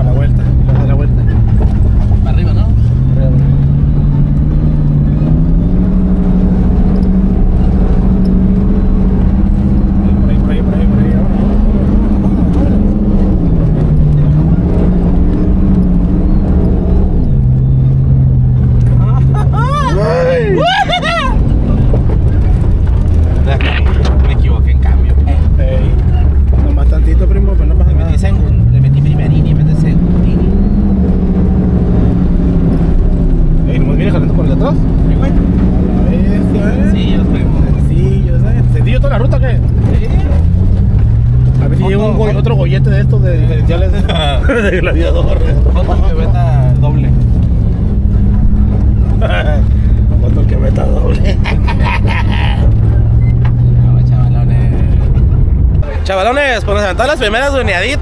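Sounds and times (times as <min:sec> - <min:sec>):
low drivetrain and tyre rumble: 0:00.0 - 0:58.0
truck engine revving: 0:00.0 - 0:58.0.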